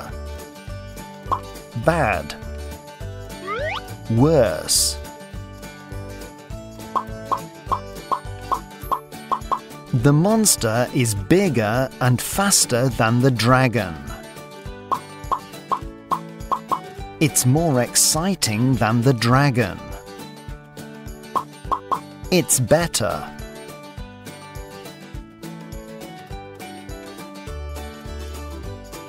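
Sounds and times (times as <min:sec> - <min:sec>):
soft background music: 0:00.0 - 0:29.0
rising cartoon plop effects: 0:03.4 - 0:03.9
cartoon pop sound effects: 0:21.4 - 0:22.0.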